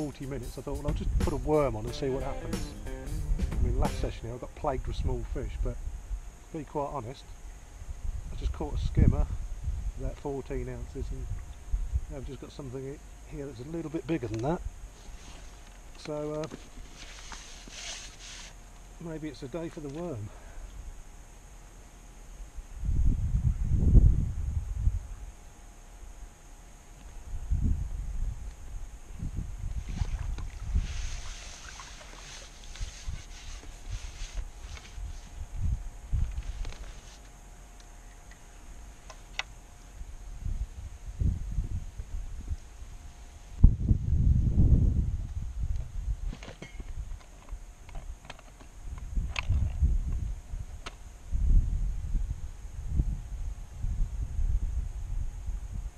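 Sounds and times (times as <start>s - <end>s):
wind gusting on microphone: 7.8s - 10.1s, 22.8s - 25.2s, 27.3s - 36.9s, 40.1s - 46.3s, 48.8s - 55.9s
water splashing: 29.9s - 33.6s.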